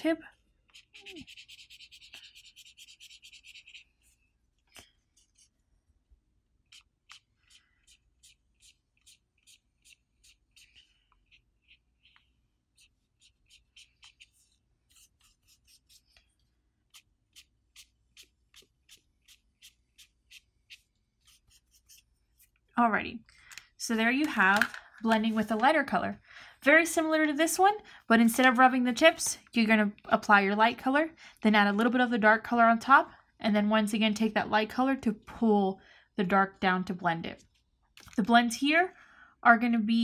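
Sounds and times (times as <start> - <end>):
marker rubbing on paper: 0.7 - 4.2, 6.6 - 22.6.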